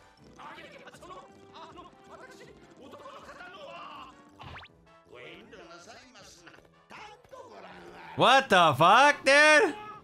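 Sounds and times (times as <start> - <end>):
quiet cartoon dialogue: 0.3 - 10.0.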